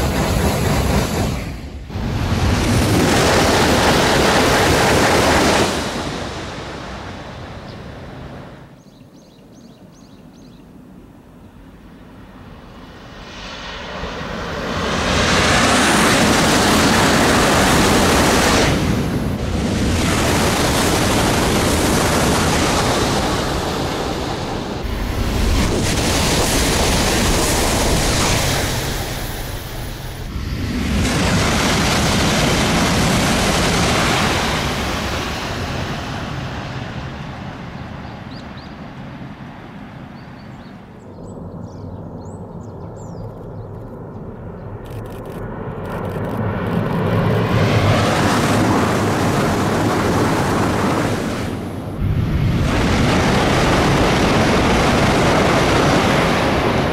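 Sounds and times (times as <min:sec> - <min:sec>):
high-speed train rushing past: 0:00.0 - 0:08.8, 0:12.2 - 0:40.2, 0:46.2 - 0:56.9.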